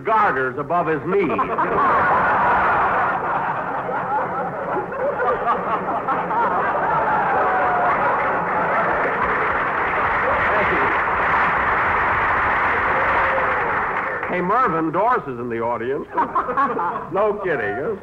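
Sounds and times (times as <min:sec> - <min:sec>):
studio audience laughing: 0:01.1 - 0:12.9, 0:16.1 - 0:18.0.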